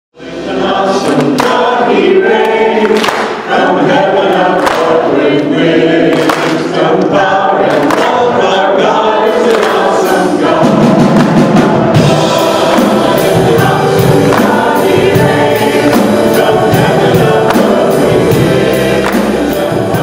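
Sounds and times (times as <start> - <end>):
choir singing: 0.2 - 20.0.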